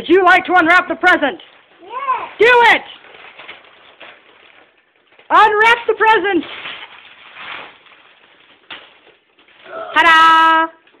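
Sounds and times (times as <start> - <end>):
wrapping paper rustling and tearing: 1.4 - 10.1
child shouting: 1.8 - 2.4.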